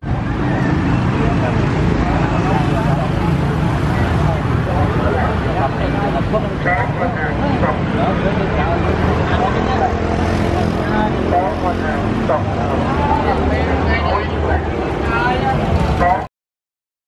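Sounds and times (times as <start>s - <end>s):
low hum of vehicle engines: 0.0s - 16.3s
people chattering indistinctly: 0.0s - 16.3s.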